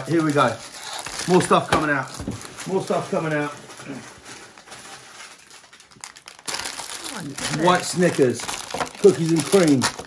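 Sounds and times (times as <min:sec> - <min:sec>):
plastic wrappers rustling: 0:00.0 - 0:10.0.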